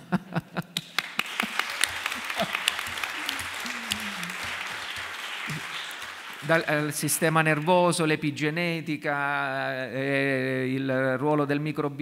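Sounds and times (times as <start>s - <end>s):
audience applauding: 0.8s - 7.9s.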